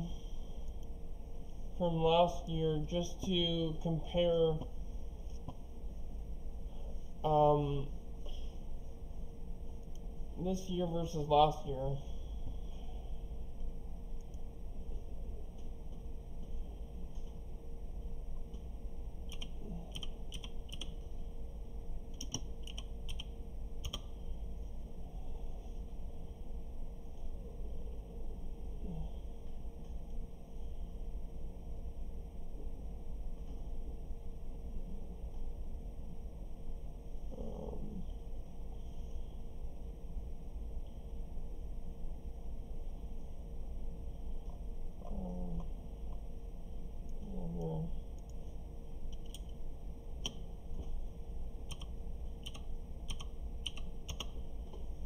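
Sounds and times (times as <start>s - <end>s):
low background rumble: 0.0s - 55.0s
low electrical hum: 0.0s - 55.0s
computer keyboard keystrokes: 19.3s - 21.0s, 22.1s - 24.1s, 49.1s - 49.6s, 51.7s - 54.4s.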